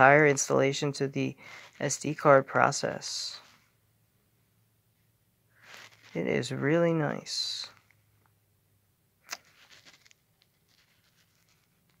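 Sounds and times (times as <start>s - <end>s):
faint rustling: 4.9s - 6.8s, 9.3s - 12.0s.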